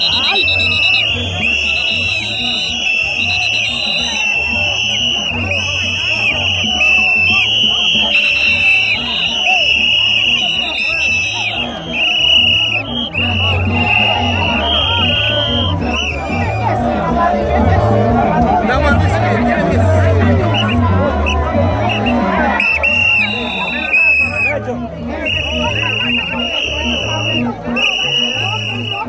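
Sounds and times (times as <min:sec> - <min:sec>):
crowd of voices: 0:00.0 - 0:29.0.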